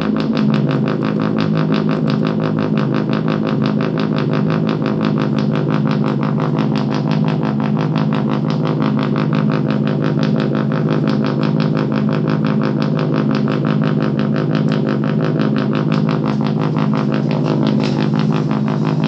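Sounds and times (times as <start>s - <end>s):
electronic step sequence pulses: 0.0s - 19.0s
low buzzing tone: 0.0s - 19.0s.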